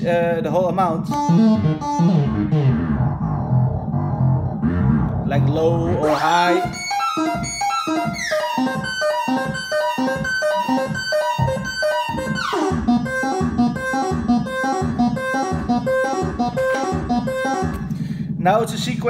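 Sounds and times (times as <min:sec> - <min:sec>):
synthesizer plucky repeating melody: 0:00.6 - 0:18.2
bright falling synth sweep: 0:01.1 - 0:17.9.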